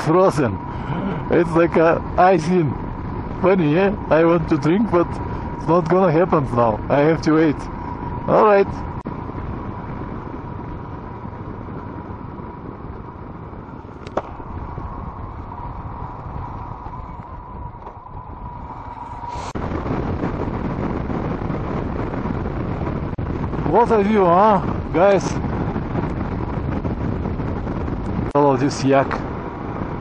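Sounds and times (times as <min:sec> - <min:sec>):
faint steady whine: 0:00.0 - 0:30.0
wind on microphone: 0:00.0 - 0:30.0.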